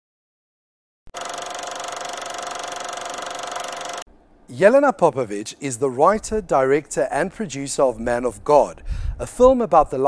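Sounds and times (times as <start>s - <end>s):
film projector clatter: 1.1s - 4.1s
projector whine: 1.1s - 4.1s.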